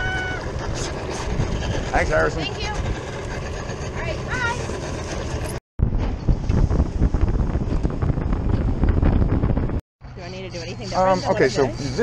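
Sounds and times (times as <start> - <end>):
motorboat running at speed: 0.0 - 5.6
wind buffeting microphone: 0.0 - 12.0.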